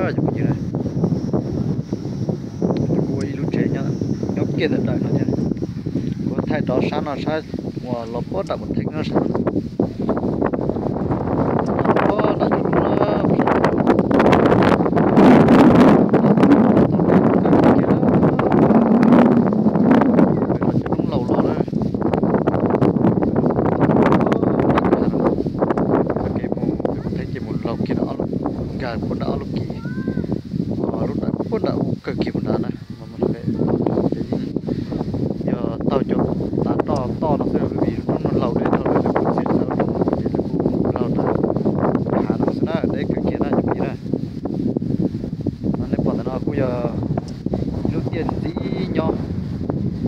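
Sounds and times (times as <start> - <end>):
wind rumbling on microphone: 0.0 - 50.0.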